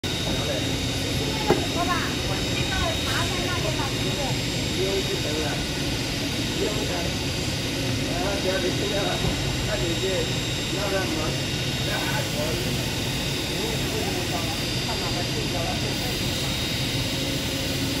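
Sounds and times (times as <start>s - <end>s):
people talking: 0.1s - 5.7s, 6.5s - 7.2s, 8.0s - 16.6s.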